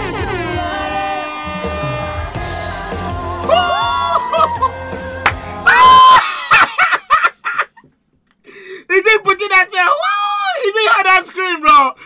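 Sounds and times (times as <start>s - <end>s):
woman singing pop song: 0.0s - 5.5s
band with bass: 0.0s - 6.1s
man laughing: 3.5s - 4.8s, 6.1s - 7.9s.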